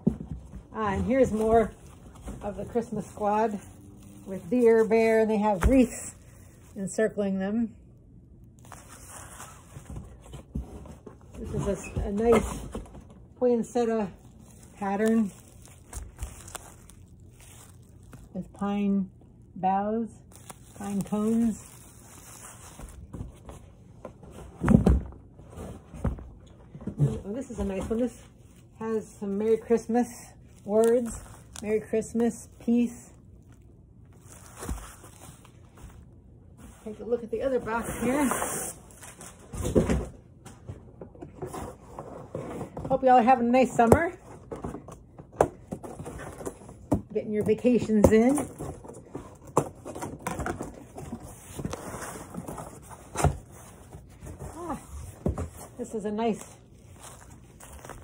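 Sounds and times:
cardboard scraping: 0:00.0 - 0:06.9, 0:08.6 - 0:18.5, 0:20.3 - 0:40.0, 0:48.2 - 0:58.0.

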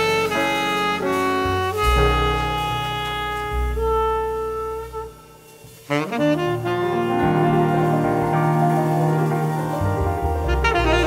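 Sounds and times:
saxophone long held notes: 0:00.0 - 0:09.3, 0:10.4 - 0:11.0
bass: 0:00.0 - 0:11.0
piano: 0:00.0 - 0:11.0.

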